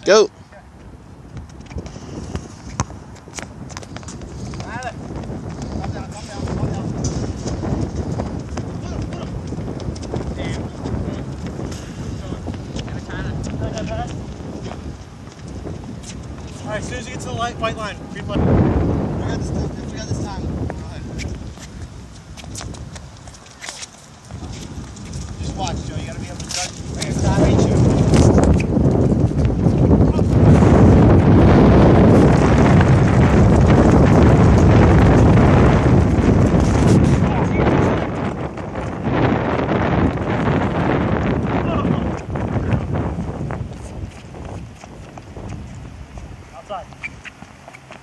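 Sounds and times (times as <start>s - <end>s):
wind rumble on microphone: 0.0s - 48.0s
sneakered footsteps on hard court: 0.8s - 17.2s, 20.6s - 31.0s, 31.7s - 48.0s
soccer ball being kicked: 1.3s - 11.8s
sneakers on hard court: 1.3s - 16.7s.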